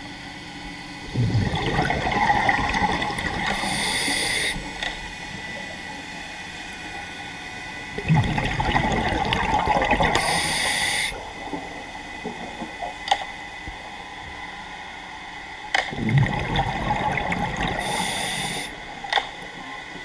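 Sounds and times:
exhaled bubbles underwater: 0:01.0 - 0:05.8, 0:07.8 - 0:13.1, 0:15.8 - 0:20.0.

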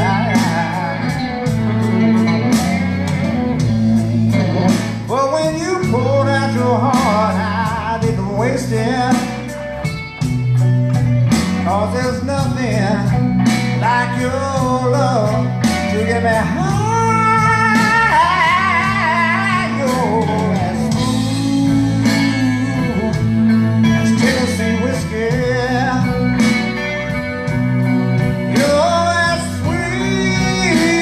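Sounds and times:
person singing: 0:00.0 - 0:03.6, 0:04.6 - 0:09.6, 0:11.6 - 0:26.9, 0:28.5 - 0:31.0
drums: 0:00.0 - 0:31.0
electric guitar lead: 0:00.0 - 0:31.0
walking bass: 0:00.0 - 0:31.0.

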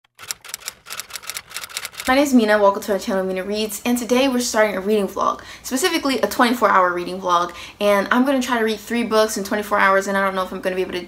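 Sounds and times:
typewriter key clicks: 0:00.1 - 0:02.1.

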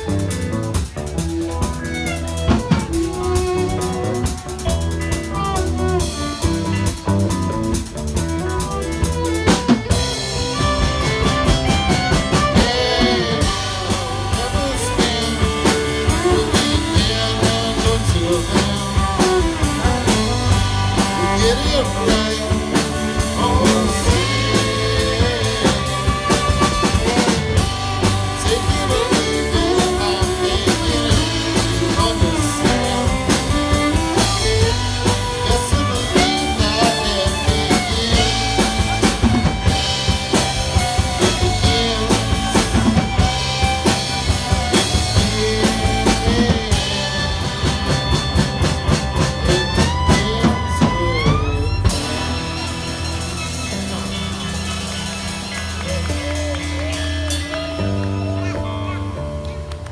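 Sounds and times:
rock band playing: 0:00.0 - 0:59.9.

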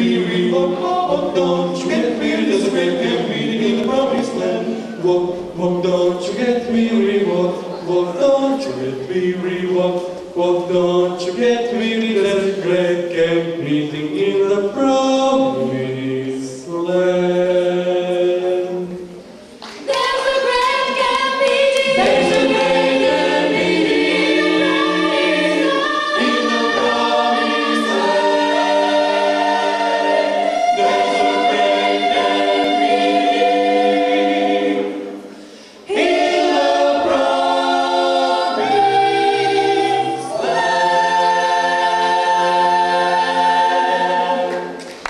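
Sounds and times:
a cappella group singing: 0:00.0 - 0:19.2, 0:19.8 - 0:45.0.

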